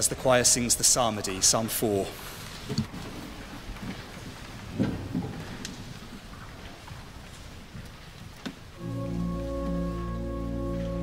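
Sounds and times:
people shuffling in wooden stalls: 0.0s - 11.0s.

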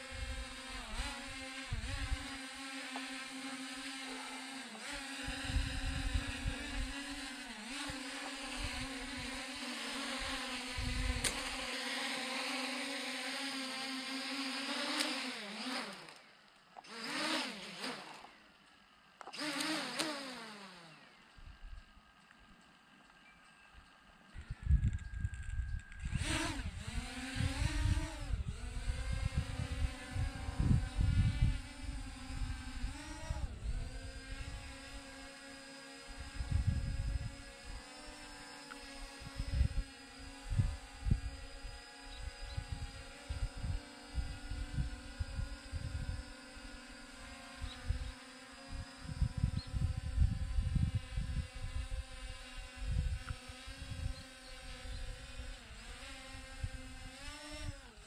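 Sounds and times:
drone propellers whining: 0.0s - 58.0s
wind buffeting microphone: 0.1s - 2.4s, 5.2s - 9.4s, 10.2s - 11.6s, 24.4s - 35.0s, 36.1s - 37.8s, 39.0s - 46.8s, 47.6s - 57.9s.

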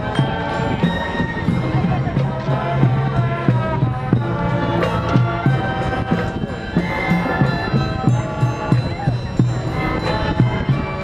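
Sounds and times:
brass holding chords: 0.0s - 11.0s
marching band playing: 0.0s - 11.0s
steady low drum beat: 0.0s - 11.0s.

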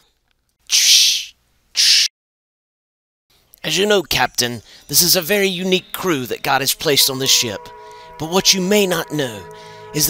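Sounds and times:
short hissing bursts: 0.7s - 2.1s.

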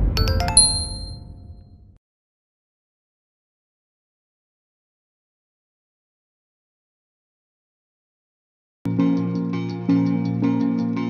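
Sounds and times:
bright chime notes: 0.0s - 1.6s
electronic jingle: 0.0s - 1.6s
low rumble: 0.0s - 2.0s.

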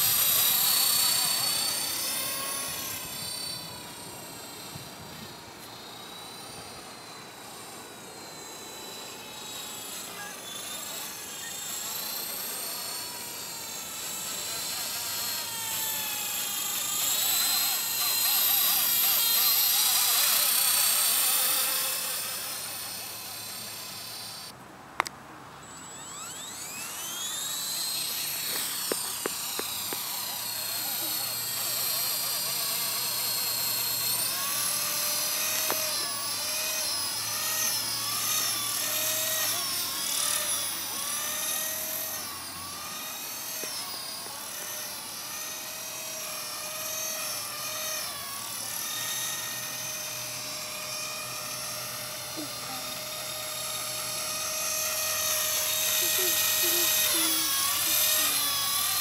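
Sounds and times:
rc helicopter rotor whine: 0.0s - 59.0s.

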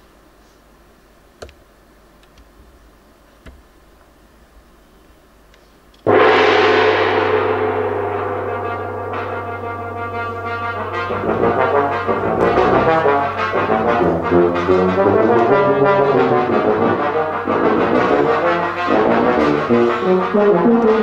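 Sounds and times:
steady low tone: 6.1s - 20.5s
brass instruments: 6.1s - 21.0s
gong ringing: 6.1s - 21.0s.

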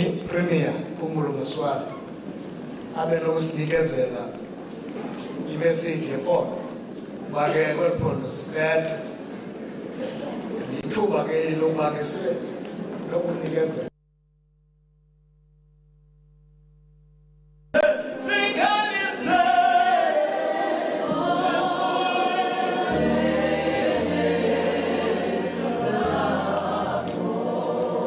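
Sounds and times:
choir singing gospel: 17.8s - 28.0s.

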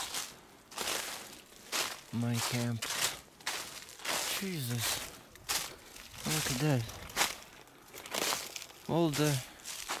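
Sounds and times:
footsteps on frosty leaves: 0.0s - 10.0s.

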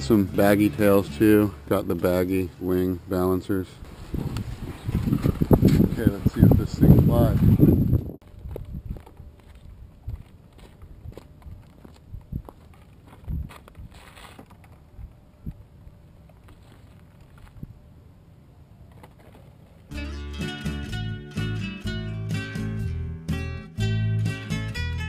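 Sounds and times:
wind rumble on microphone: 3.8s - 14.2s, 14.8s - 16.0s, 17.3s - 17.9s
strummed acoustic guitar music: 19.9s - 25.0s.

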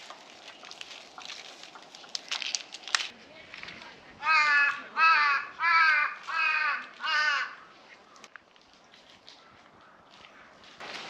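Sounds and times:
crow cawing: 4.2s - 7.7s.

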